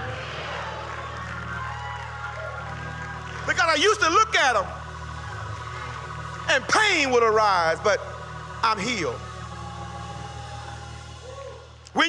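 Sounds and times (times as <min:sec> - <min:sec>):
soft held chord music: 0:00.0 - 0:12.0.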